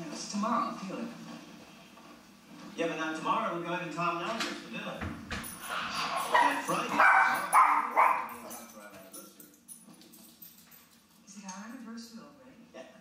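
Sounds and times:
small dog barking: 0:06.3 - 0:08.5.

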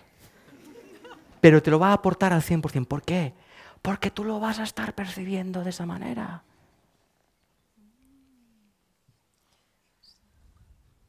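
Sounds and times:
faint low hum: 0:06.0 - 0:11.0.

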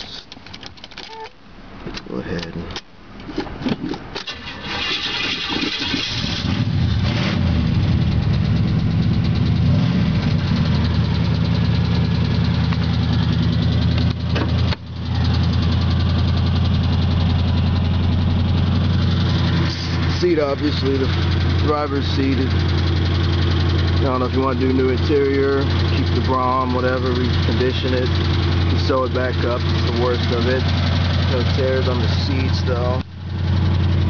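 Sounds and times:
car engine cranking and starting: 0:01.9 - 0:34.0
car engine idling: 0:04.2 - 0:34.0.

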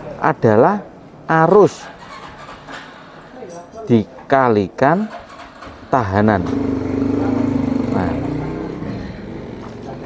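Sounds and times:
man speaking: 0:00.0 - 0:01.9, 0:03.3 - 0:05.2, 0:05.9 - 0:10.0
engine running: 0:05.2 - 0:10.0.

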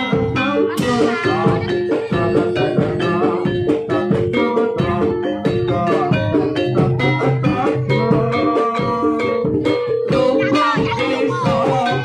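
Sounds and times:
drum beats: 0:00.0 - 0:12.0
metallophone notes: 0:00.0 - 0:12.0
wavering melody line: 0:00.0 - 0:12.0.

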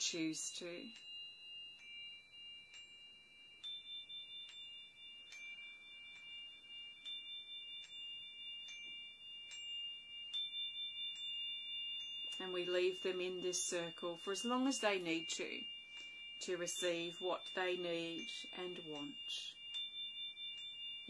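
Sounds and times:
metal chime ringing tones: 0:00.0 - 0:21.0.

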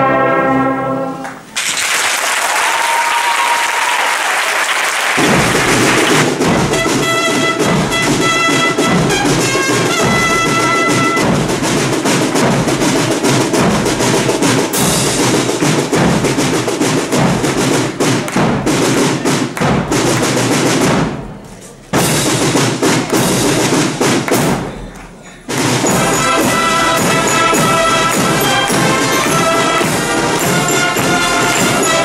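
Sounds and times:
concert wind band playing: 0:00.0 - 0:01.5, 0:05.2 - 0:20.2, 0:25.5 - 0:32.0
sharp percussion hits: 0:05.2 - 0:24.9, 0:25.5 - 0:32.0.

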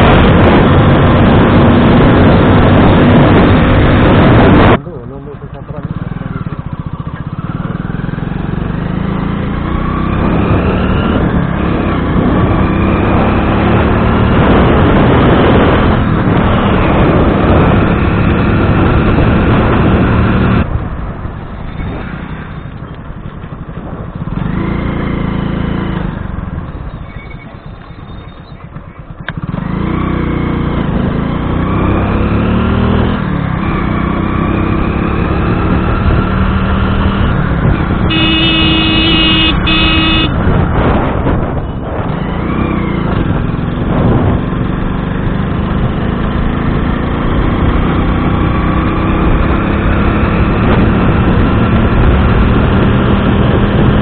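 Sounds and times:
motorcycle engine running: 0:00.0 - 0:54.0
motorcycle horn: 0:38.0 - 0:40.6.

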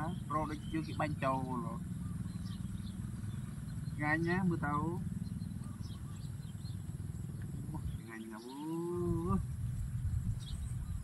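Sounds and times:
drawn-out rising call: 0:00.0 - 0:09.7
low rumble: 0:00.0 - 0:11.0.

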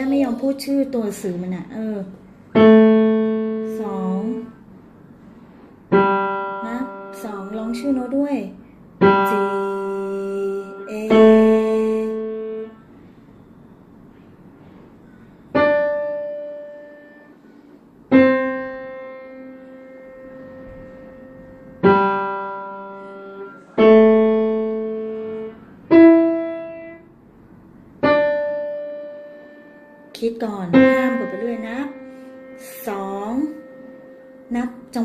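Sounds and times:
piano note ringing: 0:00.0 - 0:35.0.

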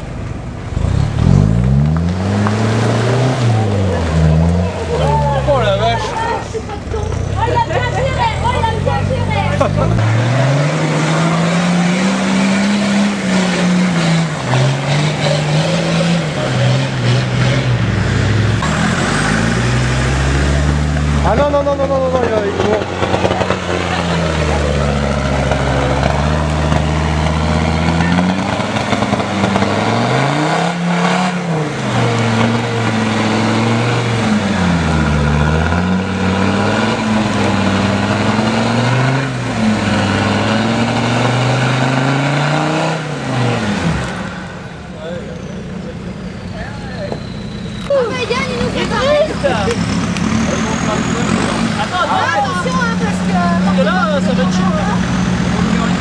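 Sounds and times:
truck engine revving: 0:00.0 - 0:56.0.

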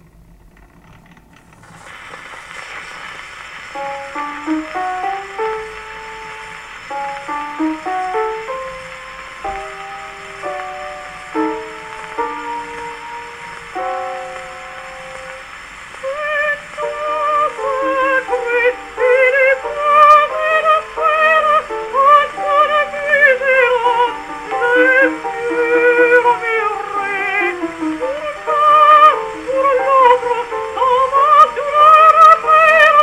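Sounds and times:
gramophone surface hiss: 0:00.0 - 0:33.0
soprano singing with vibrato: 0:03.8 - 0:33.0.

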